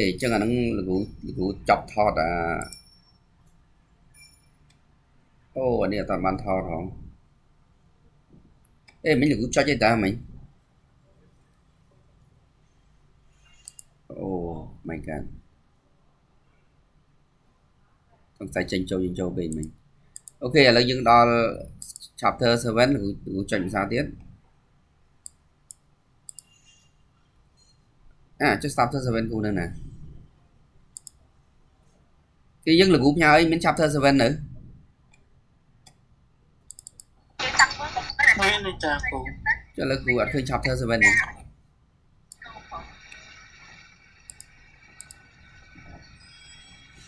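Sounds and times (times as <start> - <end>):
faint background hum: 0.0 - 47.0
computer mouse clicks: 13.5 - 14.0, 19.5 - 20.4, 25.2 - 26.6, 30.9 - 31.2, 36.7 - 37.2, 43.0 - 46.3.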